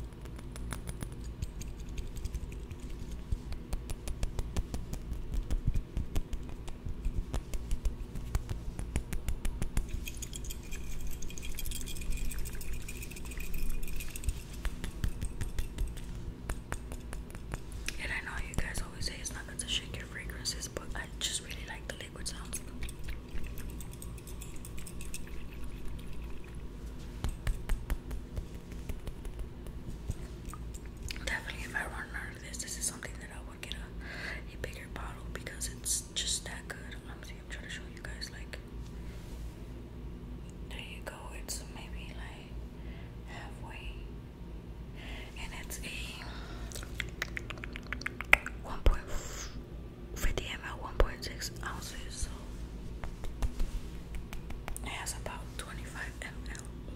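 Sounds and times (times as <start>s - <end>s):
soft whispering: 17.7s - 22.8s, 31.1s - 38.6s, 40.7s - 42.6s, 43.2s - 44.1s, 45.1s - 46.9s, 48.6s - 49.6s, 50.2s - 52.7s, 54.7s - 56.9s.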